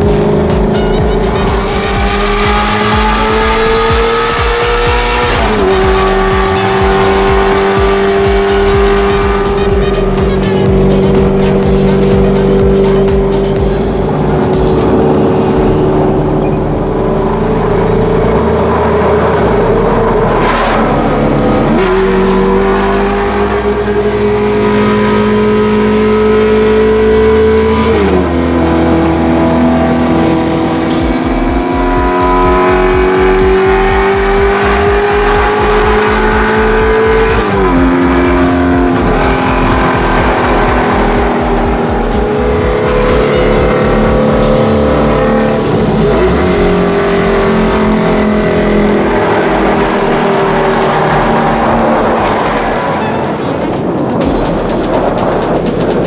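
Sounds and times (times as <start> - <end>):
car engine accelerating with upshifts: 0.0 - 56.0.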